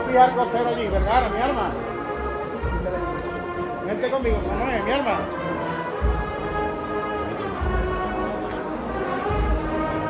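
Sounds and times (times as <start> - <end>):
brass band holding chords: 0.0 - 10.0
low drum beats: 5.9 - 10.0.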